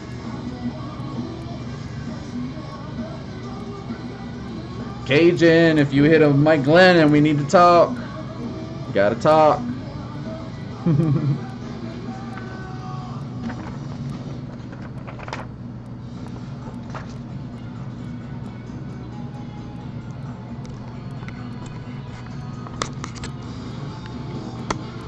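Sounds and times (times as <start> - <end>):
background music: 0.0 - 25.0
sharp clicks: 11.4 - 25.0.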